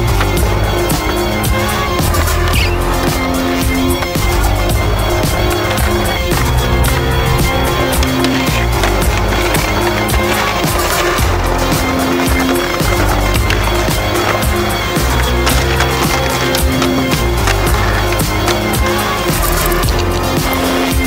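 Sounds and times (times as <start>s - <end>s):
music track: 0.0s - 21.0s
skateboard clacking on stone: 0.0s - 21.0s
skateboard wheels rolling on paving: 0.0s - 21.0s.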